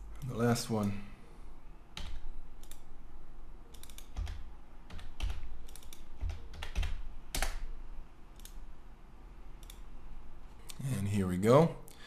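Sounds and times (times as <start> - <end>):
computer keyboard typing: 2.0 - 2.9, 3.7 - 7.7.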